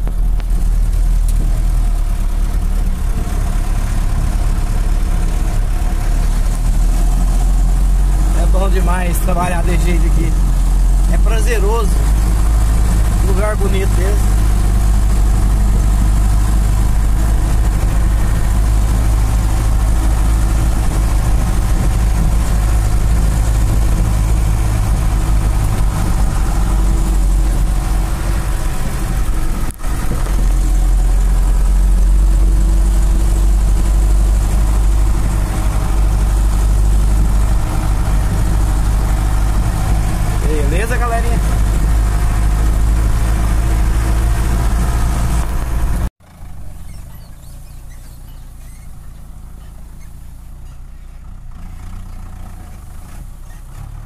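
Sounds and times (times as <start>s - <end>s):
truck engine droning: 0.0s - 54.0s.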